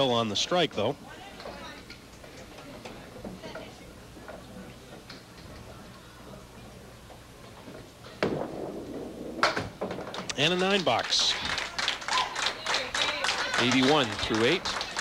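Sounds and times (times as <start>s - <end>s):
low hum of hall: 0.0s - 15.0s
bowling ball rumble: 7.6s - 10.4s.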